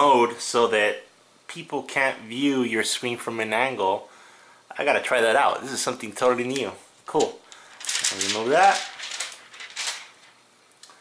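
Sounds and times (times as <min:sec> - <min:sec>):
plastic sticker crinkling: 0:06.5 - 0:10.4.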